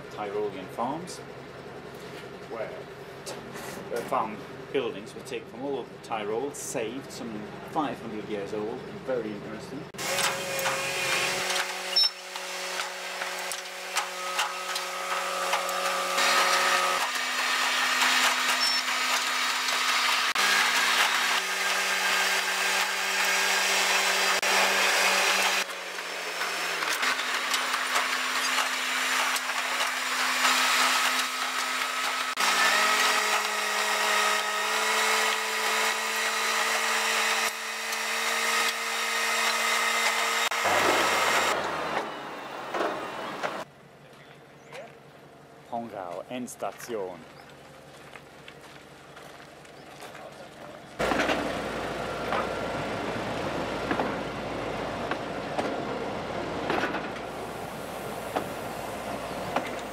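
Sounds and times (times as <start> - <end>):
diesel locomotive engine: 0.0 - 36.6, 40.1 - 59.9
wheels on rails: 10.0 - 45.0, 46.8 - 59.9.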